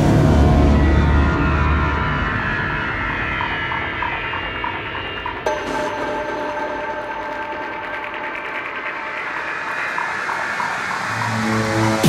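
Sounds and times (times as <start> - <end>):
synthesized noise sweep: 0.0 - 12.0.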